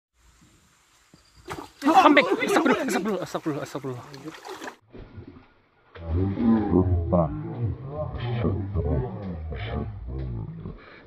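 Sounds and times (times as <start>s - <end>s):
man calling out loudly: 1.8s - 3.2s.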